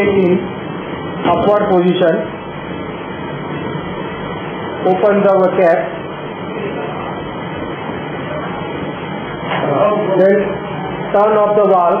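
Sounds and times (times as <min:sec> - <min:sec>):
gas pump humming and hissing: 0:00.0 - 0:12.0.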